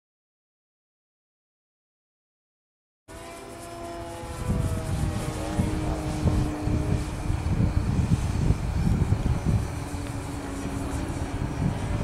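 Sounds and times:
model airplane motor whine: 3.1s - 12.0s
low uneven rumble: 4.4s - 12.0s.

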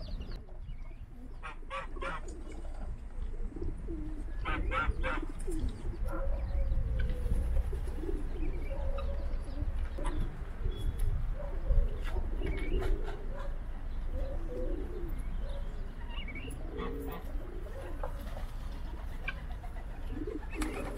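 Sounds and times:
pigeons cooing: 0.0s - 20.9s.

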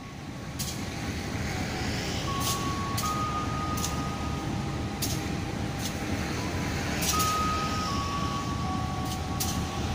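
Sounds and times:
diesel locomotive low rumble: 0.0s - 9.9s
thin steady tone: 1.4s - 9.9s.

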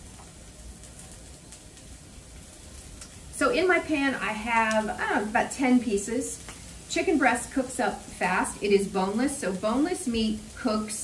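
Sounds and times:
small crackling pops: 0.0s - 3.4s, 4.6s - 5.1s, 6.3s - 7.0s
chicken sizzling in a skillet: 0.0s - 11.0s.

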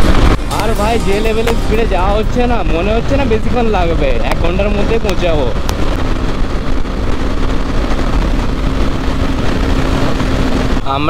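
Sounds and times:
motorcycle engine hum: 0.0s - 11.0s
wind rush on microphone: 0.0s - 11.0s.

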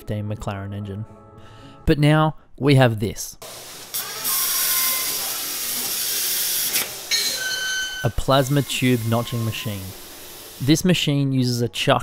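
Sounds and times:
plasma torch hissing: 3.4s - 10.8s
steady high tone: 7.1s - 10.0s.

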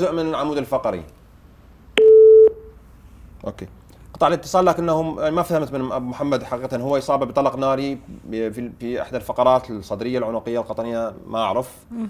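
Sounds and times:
telephone busy tone beep: 2.0s - 2.7s.

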